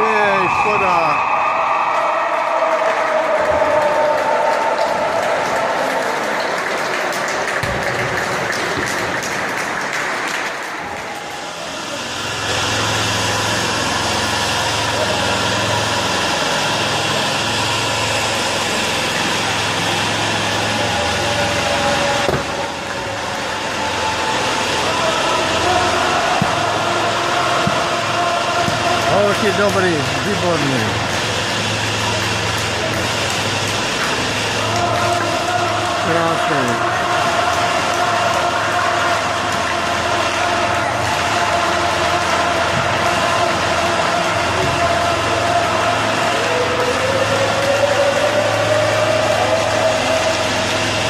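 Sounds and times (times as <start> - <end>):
many voices chattering: 0.0 - 1.3, 2.6 - 51.0.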